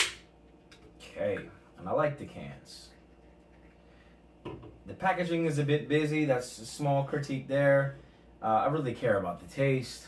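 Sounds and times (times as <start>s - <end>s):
drink can set down on table: 4.4s - 4.8s.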